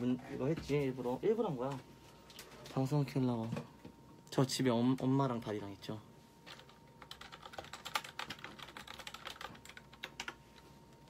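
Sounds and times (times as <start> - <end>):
keyboard typing clicks: 6.5 - 10.4.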